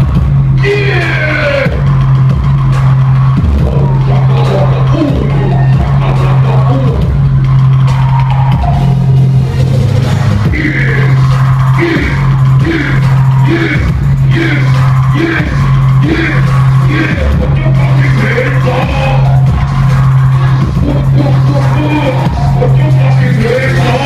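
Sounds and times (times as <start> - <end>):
loud house music: 0.0 - 24.0.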